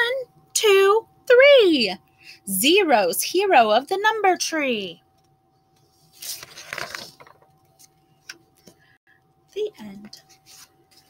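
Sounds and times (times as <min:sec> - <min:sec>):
book page turning: 0:05.8 - 0:08.8, 0:10.1 - 0:11.0.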